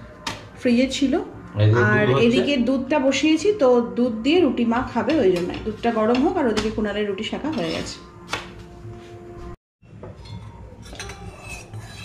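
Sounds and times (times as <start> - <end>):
metal spatula scraping a pan: 10.2 - 12.0.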